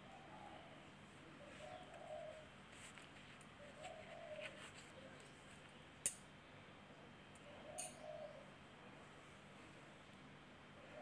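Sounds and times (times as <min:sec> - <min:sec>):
dove cooing: 0:00.0 - 0:02.6, 0:03.6 - 0:05.2, 0:07.4 - 0:08.6, 0:10.8 - 0:11.0.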